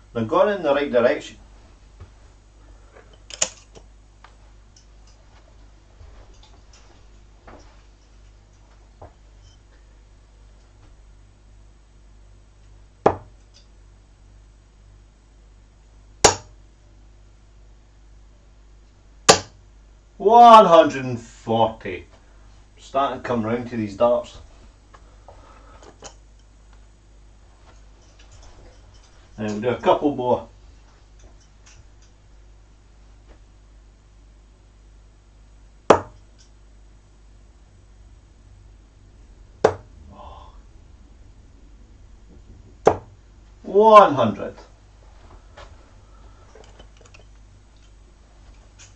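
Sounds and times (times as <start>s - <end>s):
darts striking a dartboard: 13.0s - 13.4s, 16.2s - 16.6s, 19.3s - 19.6s, 35.9s - 36.2s, 39.6s - 39.9s, 42.8s - 43.2s.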